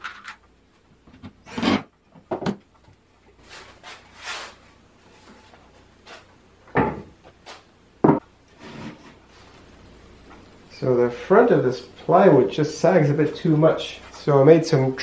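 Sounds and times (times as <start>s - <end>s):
wood rubbing scrape: 3.4s - 6.2s, 8.5s - 9.6s
wooden knocks and thumps: 6.7s - 7.2s, 8.0s - 8.2s.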